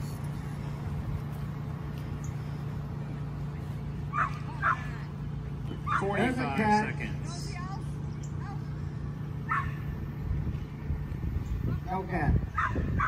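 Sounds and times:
steady low hum: 0.0 - 13.0
dog barking: 4.1 - 4.9, 5.8 - 6.2, 9.5 - 9.8, 12.6 - 13.0.

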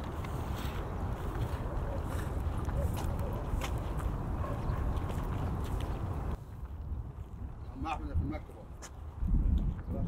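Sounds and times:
footsteps on stone: 0.0 - 7.5
wind buffeting microphone: 0.0 - 10.0.

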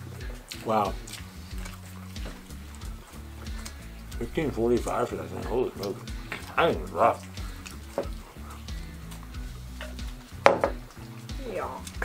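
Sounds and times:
quiet background music: 0.0 - 12.0
cup knocking on wooden table: 10.4 - 10.8.

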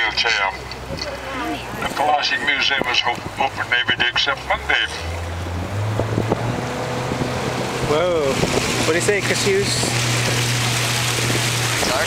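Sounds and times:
boat motor humming: 0.0 - 12.0
wind on microphone: 5.4 - 12.0.

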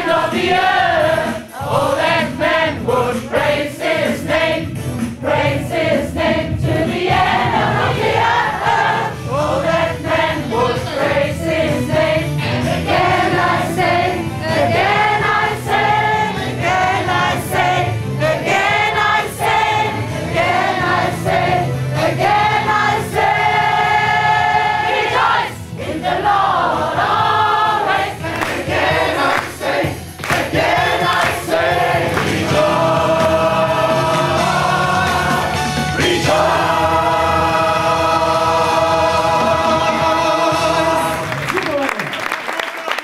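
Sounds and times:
gospel choir singing: 0.0 - 41.4.

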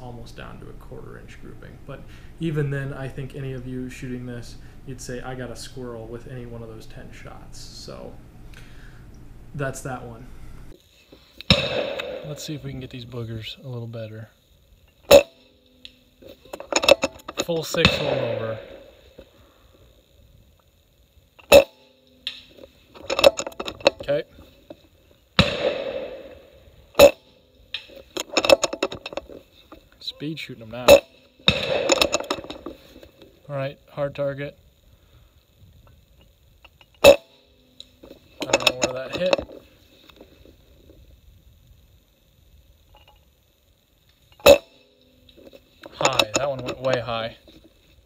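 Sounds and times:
air rifle cracks: 11.4 - 12.4, 30.9 - 33.2
air rifle shot crack: 11.5 - 12.4, 25.4 - 27.1, 31.5 - 32.1
rifle handling clicks and rattles: 15.8 - 19.3, 22.2 - 25.5, 27.0 - 30.0, 30.8 - 33.3, 37.8 - 40.5, 45.3 - 48.0.

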